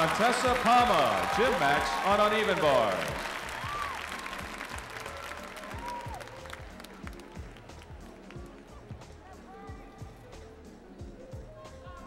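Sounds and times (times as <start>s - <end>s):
crowd applauding: 0.0s - 8.8s
faint music: 0.0s - 12.0s.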